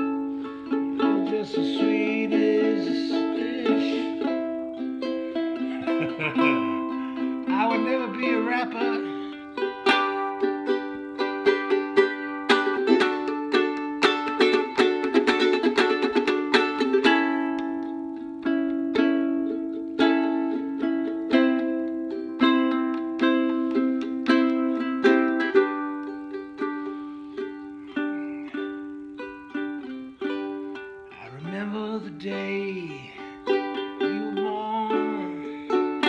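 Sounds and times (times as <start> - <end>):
ukulele strumming: 0.0 - 36.0.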